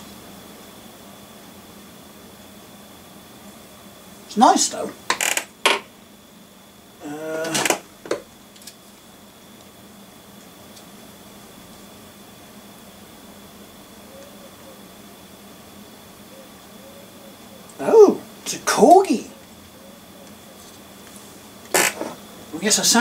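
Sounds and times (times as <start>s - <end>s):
person exclaiming in surprise: 17.8s - 18.3s.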